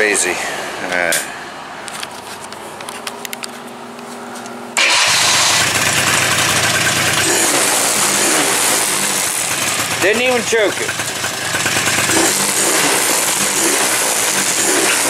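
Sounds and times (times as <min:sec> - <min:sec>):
atv engine cranking and running: 0:04.8 - 0:15.0.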